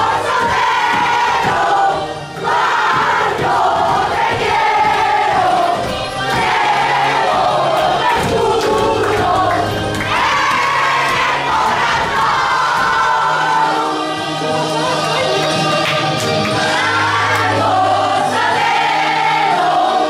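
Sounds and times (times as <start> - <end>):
music with bass line: 0.0 - 20.0
women singing and shouting: 0.0 - 20.0.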